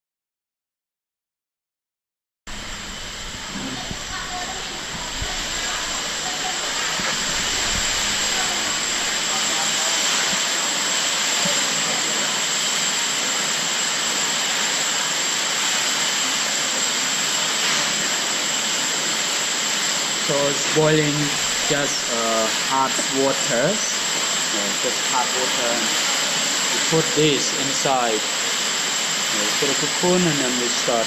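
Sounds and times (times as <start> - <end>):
stove burners hissing: 2.5 - 31.0.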